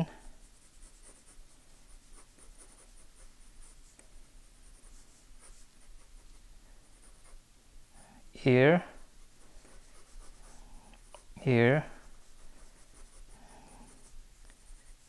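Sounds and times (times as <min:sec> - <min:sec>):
pencil scratching on paper: 0:00.2 - 0:07.4, 0:08.4 - 0:15.0.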